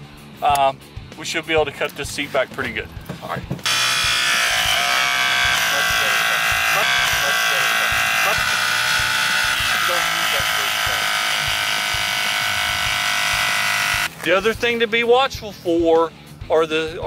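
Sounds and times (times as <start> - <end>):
hydraulic cutter pump whining: 3.6 - 14.3.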